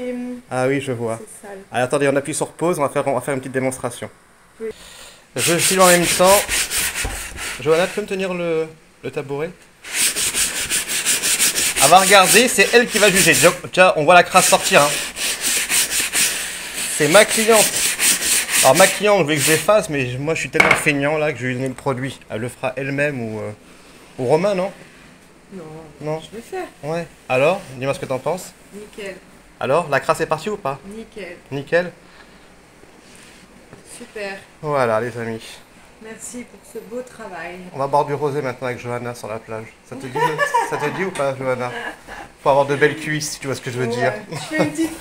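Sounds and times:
cloth rubbing on leather: 5.4s - 8.1s, 9.8s - 13.6s, 14.3s - 19.7s.

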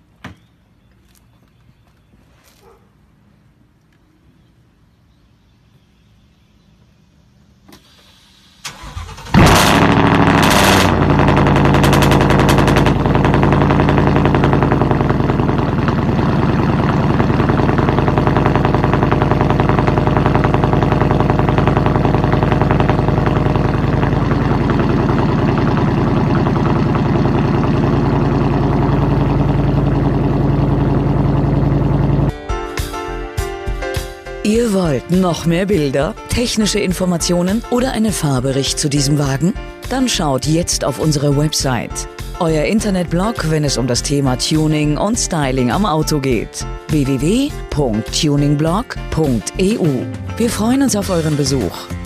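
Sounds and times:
car engine starting and idling: 7.7s - 33.0s, 34.5s - 52.0s.

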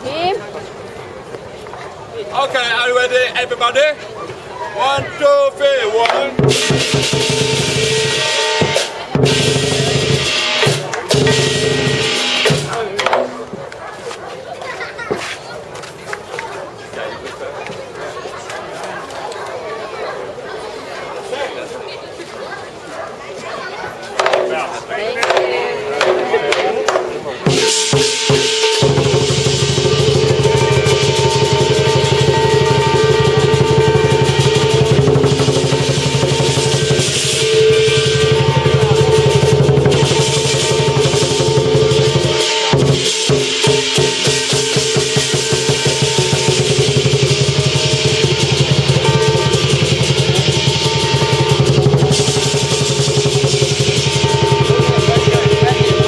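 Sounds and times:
fast drum roll: 6.0s - 13.4s, 25.2s - 56.0s
hand cymbals: 6.2s - 13.4s, 25.2s - 56.0s
gong ringing: 6.4s - 12.7s, 27.5s - 56.0s.

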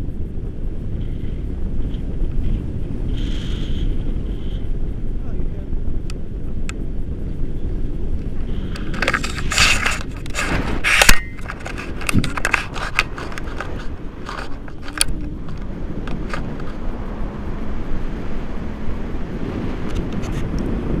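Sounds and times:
wind noise rumble: 0.0s - 21.0s
handling clicks and rustles: 8.1s - 16.8s.

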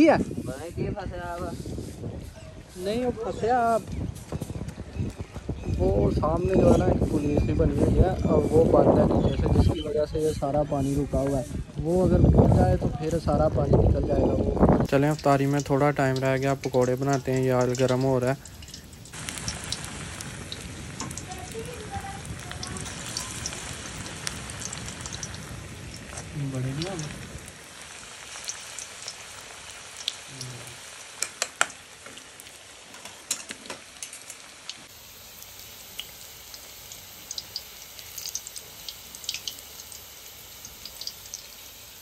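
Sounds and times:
batter sizzling in hot oil: 14.7s - 42.0s
crackling pops: 14.8s - 40.0s.

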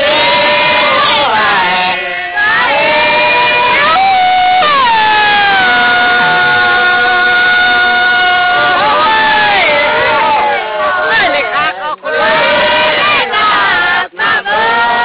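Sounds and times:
people singing a work chant: 0.0s - 15.0s.

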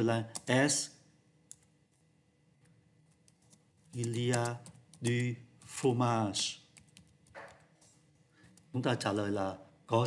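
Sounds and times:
computer keyboard keystrokes: 0.2s - 0.6s, 3.1s - 5.3s, 6.7s - 8.7s.

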